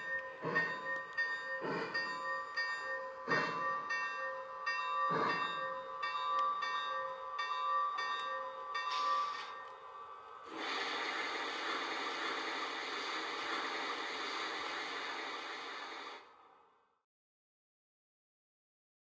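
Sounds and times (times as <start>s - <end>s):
electronic locomotive bell ringing: 0.0s - 10.5s.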